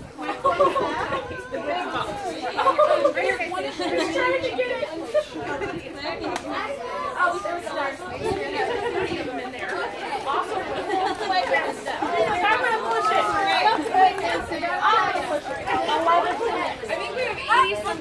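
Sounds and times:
children and adults chattering: 0.0 - 18.0.

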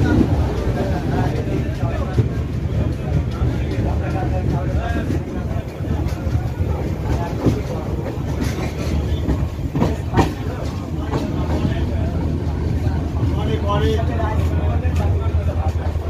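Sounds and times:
train wheels rumbling on rails: 0.0 - 16.0
wheels clacking over track joints: 0.0 - 16.0.

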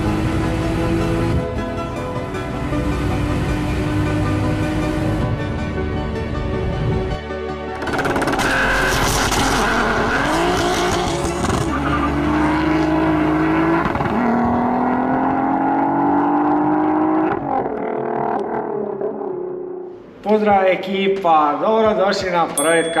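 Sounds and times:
car engine accelerating: 7.8 - 19.8.

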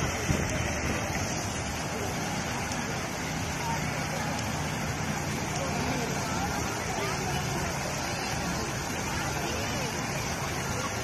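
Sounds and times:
faint crowd voices: 0.0 - 11.0
fountain water splashing into pool: 0.0 - 11.0.

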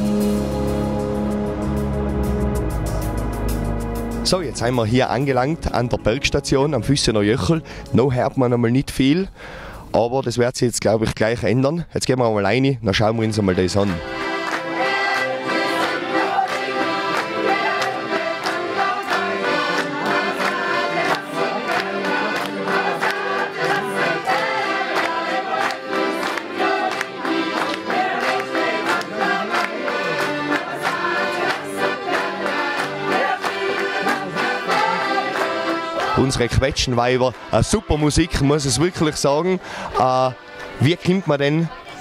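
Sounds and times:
accordions playing a tune: 0.0 - 9.7, 13.0 - 42.0.

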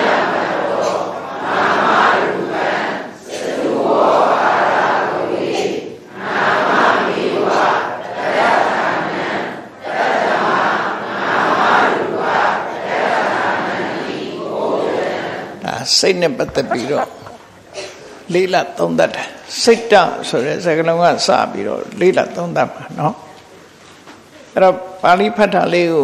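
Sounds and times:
voices reciting in unison: 0.0 - 23.1.

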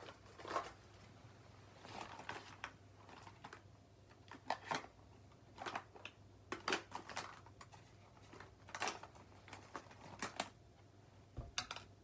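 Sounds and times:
low room hum: 0.0 - 12.0
small objects tapping and clicking: 11.4 - 12.0.

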